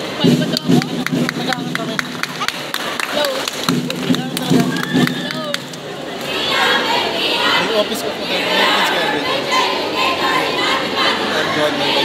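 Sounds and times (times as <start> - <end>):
sharp hand claps: 0.4 - 5.9
group chanting together: 5.2 - 12.0.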